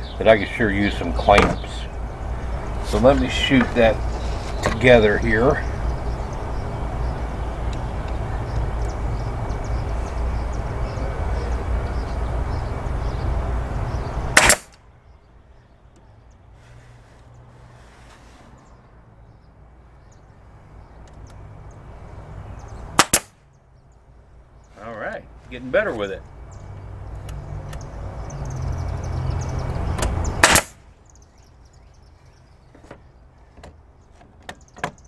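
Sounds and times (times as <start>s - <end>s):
nail gun shots: 14.4s - 14.8s, 23.0s - 23.4s, 30.4s - 30.8s.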